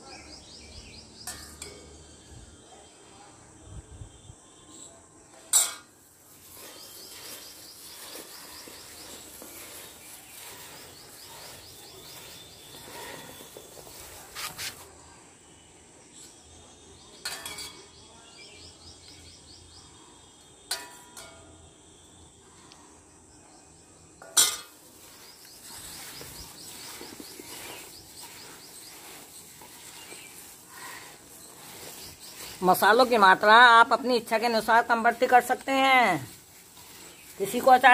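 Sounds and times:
quiet stirring: 24.8s - 37.9s.

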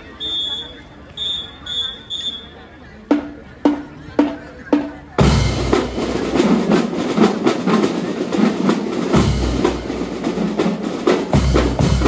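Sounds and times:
drum and lyre corps marching: 0.3s - 12.0s.

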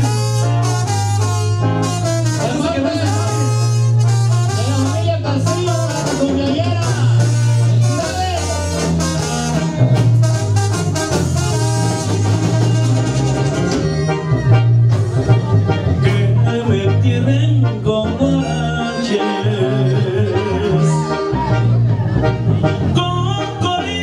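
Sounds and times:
heavy repeating bass line: 0.0s - 24.0s
live band playing latin dance music: 0.0s - 24.0s.

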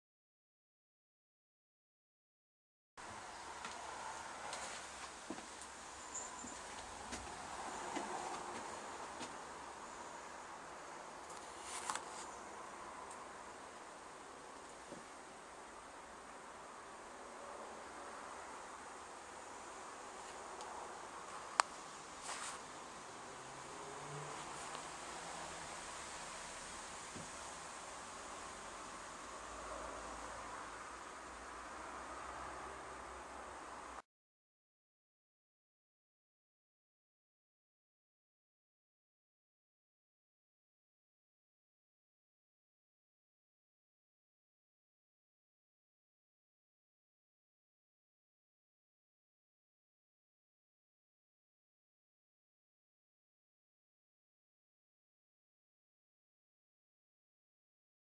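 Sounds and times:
faint room noise: 3.0s - 34.0s.

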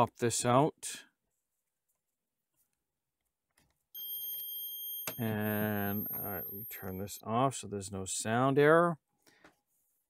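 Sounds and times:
printer error alarm beeping: 4.0s - 7.2s.

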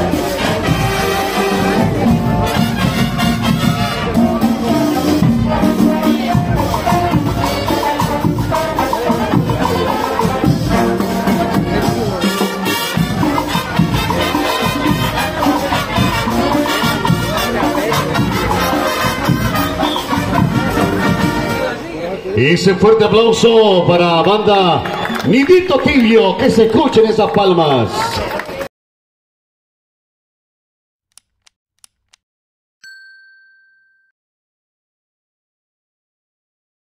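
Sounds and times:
marching band playing: 0.0s - 21.8s
mouse clicks: 31.1s - 32.2s
notification bell ding: 32.8s - 34.2s.

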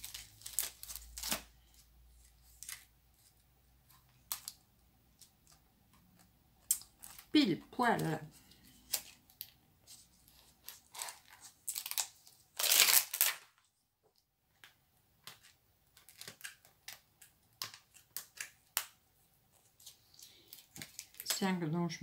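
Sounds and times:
plastic sheet crinkling: 0.0s - 13.7s, 15.2s - 19.0s, 19.6s - 21.6s.

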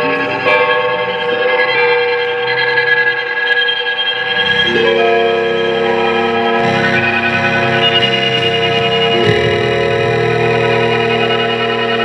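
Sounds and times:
experimental electric guitar music: 0.0s - 12.0s.

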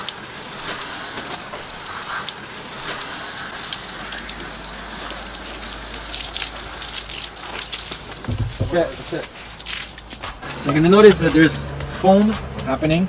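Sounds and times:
hose spray pattering on stones: 0.0s - 11.6s.

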